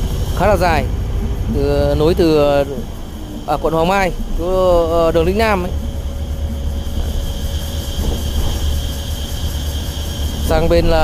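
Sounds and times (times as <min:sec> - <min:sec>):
bus engine and road rumble: 0:00.0 - 0:11.0
faint high whine: 0:00.0 - 0:11.0.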